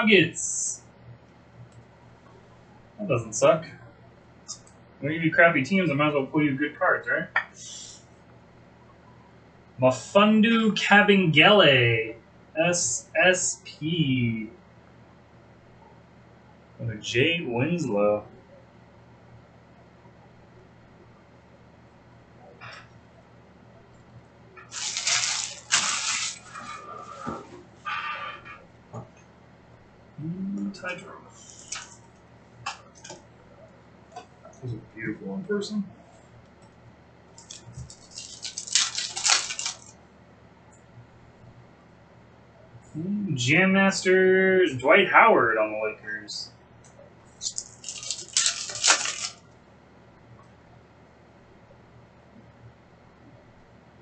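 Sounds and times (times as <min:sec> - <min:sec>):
crinkly foil rustling: 0:24.6 - 0:26.8, 0:31.5 - 0:32.0, 0:37.4 - 0:40.0, 0:47.4 - 0:49.4.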